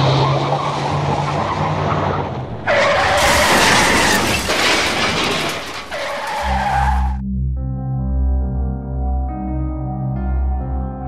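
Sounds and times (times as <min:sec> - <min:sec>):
car tyres screeching: 0:00.0 - 0:07.2.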